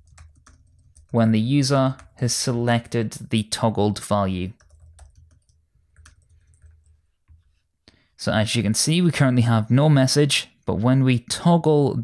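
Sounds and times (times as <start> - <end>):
faint keyboard keystrokes: 4.6 - 7.5.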